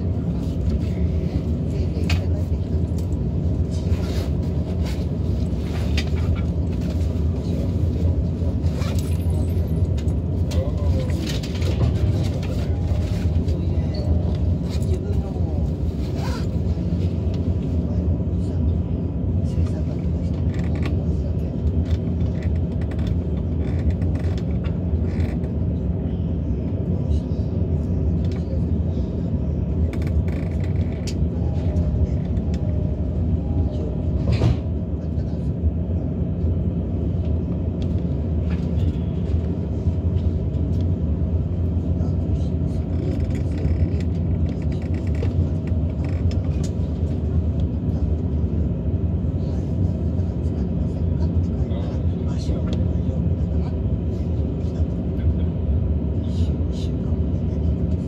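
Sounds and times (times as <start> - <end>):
train hum and rumble: 0.0 - 58.0
faint voices: 6.1 - 58.0.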